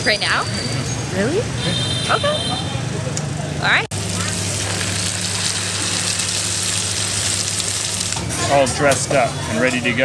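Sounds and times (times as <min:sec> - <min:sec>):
pancakes sizzling in hot oil: 0:03.9 - 0:08.2.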